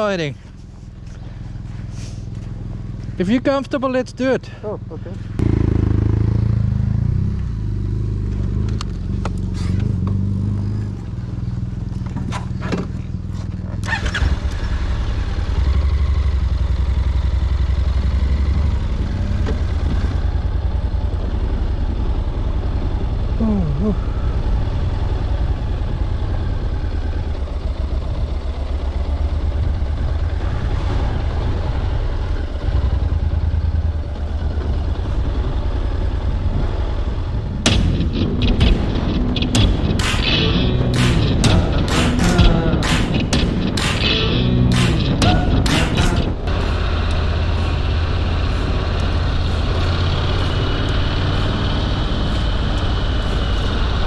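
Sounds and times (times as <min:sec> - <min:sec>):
motorcycle engine running: 0:04.6 - 0:54.0
sharp clicks and knocks: 0:37.7 - 0:54.0.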